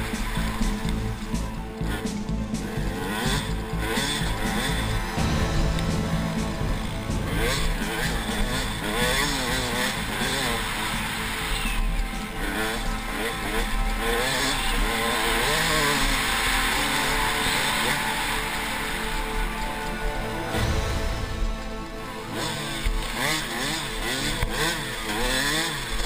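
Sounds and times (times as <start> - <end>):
dirt bike engine revving: 0.0 - 26.0
steady rush of noise: 0.0 - 26.0.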